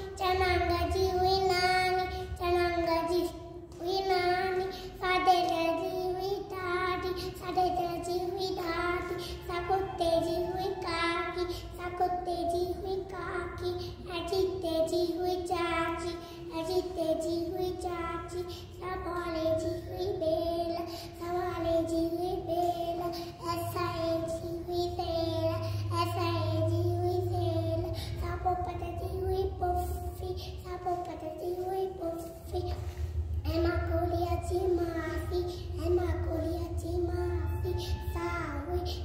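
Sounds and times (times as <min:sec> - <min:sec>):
boy singing unaccompanied: 0:00.0 - 0:32.6.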